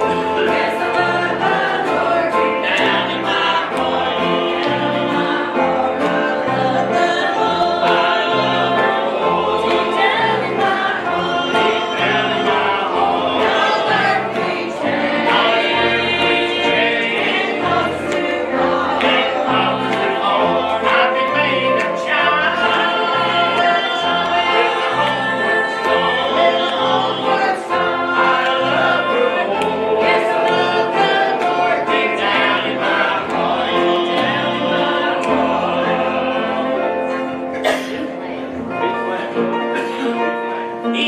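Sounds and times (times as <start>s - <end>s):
banjo: 0.0s - 41.0s
congregation singing a hymn: 0.0s - 41.0s.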